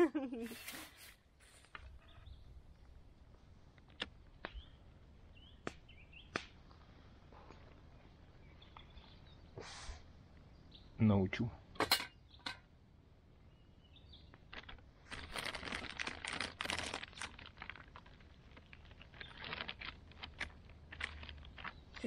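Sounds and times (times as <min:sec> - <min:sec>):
paper wrapping rustling: 0:14.4 - 0:22.0.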